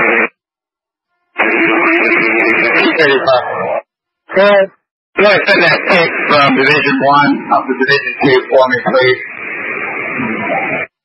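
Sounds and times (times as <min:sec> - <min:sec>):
hissy radio transmission: 0:00.0 - 0:00.3, 0:01.4 - 0:11.0
radio static burst: 0:00.0 - 0:00.3, 0:01.2 - 0:11.0
steady hum: 0:00.0 - 0:10.9.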